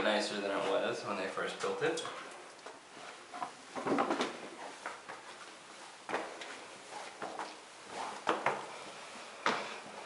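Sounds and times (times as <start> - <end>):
footsteps on stone floor: 4.0 - 8.7.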